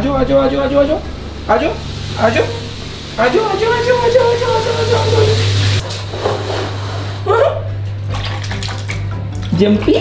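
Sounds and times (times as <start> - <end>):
water sloshing in a plastic tub: 8.0 - 10.0.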